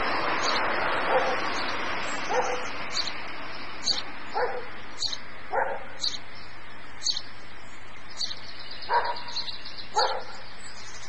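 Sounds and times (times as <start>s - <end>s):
steady outdoor hiss: 0.0s - 11.0s
dog barking: 1.1s - 1.4s, 2.3s - 2.7s, 4.3s - 4.7s, 5.5s - 6.0s, 8.9s - 10.4s
small bird chirping: 1.3s - 11.0s.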